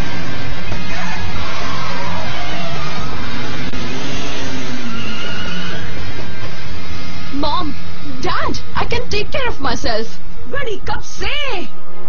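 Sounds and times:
motorcycle engine revving: 0:00.0 - 0:08.2.

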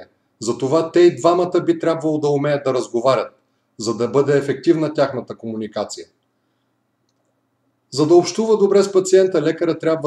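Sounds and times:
man speaking: 0:00.0 - 0:06.2, 0:07.9 - 0:10.0.

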